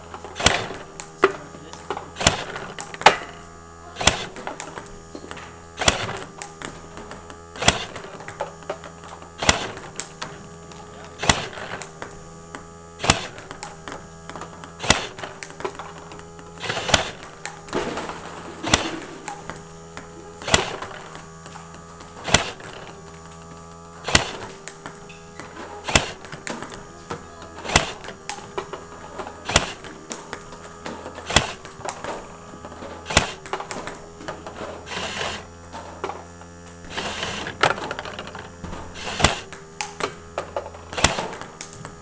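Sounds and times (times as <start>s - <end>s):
robot motor humming: 0.0s - 42.0s
sharp click of ball feeder: 0.1s - 42.0s.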